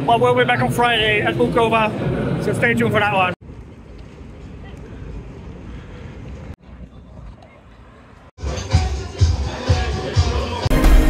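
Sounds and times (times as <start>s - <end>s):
outdoor ambience: 0.0s - 10.7s.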